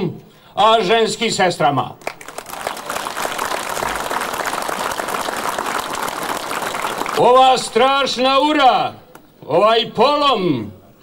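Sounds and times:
crowd applauding: 2.0 - 7.8.

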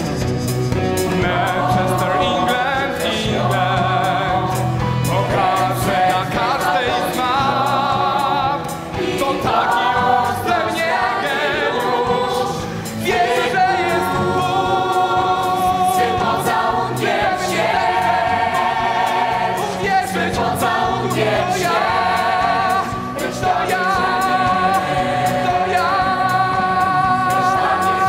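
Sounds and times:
instrumental accompaniment: 0.0 - 28.0
chorus singing: 0.8 - 28.0
male lead voice singing: 1.1 - 16.4, 19.1 - 28.0.

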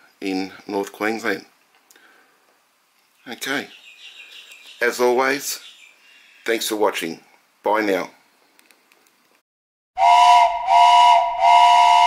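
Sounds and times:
steam whistle blasts: 10.0 - 12.0.

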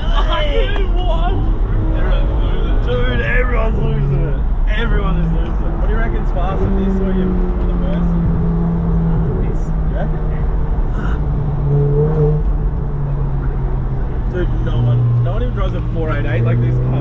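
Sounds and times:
car engine running: 0.0 - 17.0.

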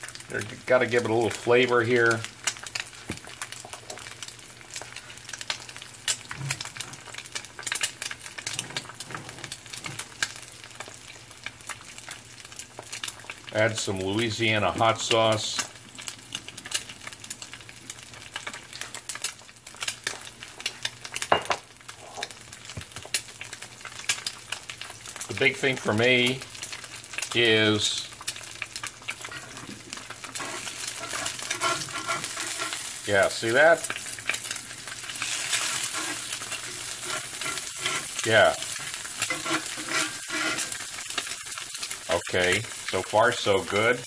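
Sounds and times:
eggs sizzling in oil: 0.0 - 44.0
metal spatula scraping a pan: 29.2 - 33.0, 35.0 - 41.3.

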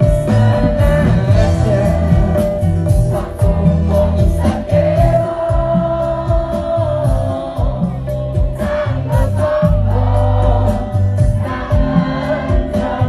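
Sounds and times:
bass and drums: 0.0 - 13.0
crowd singing along: 0.0 - 13.0
man singing lead: 0.0 - 13.0.

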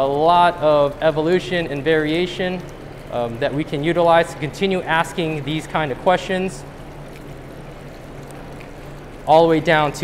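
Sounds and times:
low steady hum: 0.0 - 10.0
water rushing in fish tank: 0.0 - 10.0.

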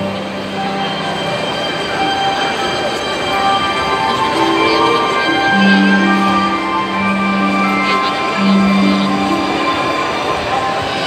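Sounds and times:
high squealing tones: 0.0 - 11.0
rumble of rolling train wagons: 0.0 - 11.0.

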